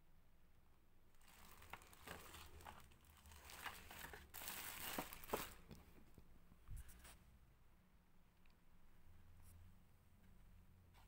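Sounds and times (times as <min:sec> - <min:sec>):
plastic packaging crinkling: 0:01.1 - 0:05.8.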